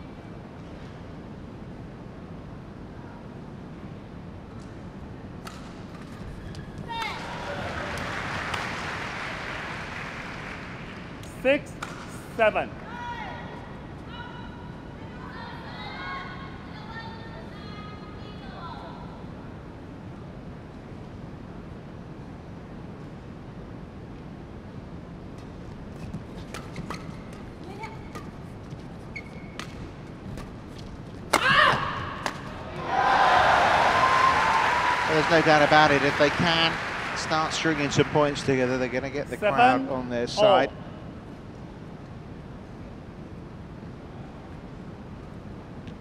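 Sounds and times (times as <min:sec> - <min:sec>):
racket hitting shuttlecock: 0:05.4 - 0:06.3, 0:11.7 - 0:12.2, 0:25.9 - 0:28.5, 0:29.1 - 0:32.8
crowd cheering: 0:06.8 - 0:11.2, 0:31.4 - 0:39.2
player shouting: 0:39.5 - 0:40.8.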